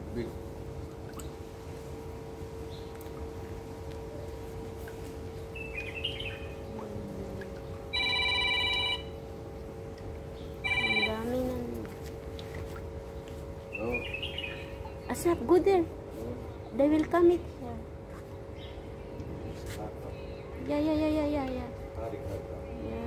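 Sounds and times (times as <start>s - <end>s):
steady low hum: 0.0s - 23.0s
electronic multi-pitch tone: 10.6s - 11.5s.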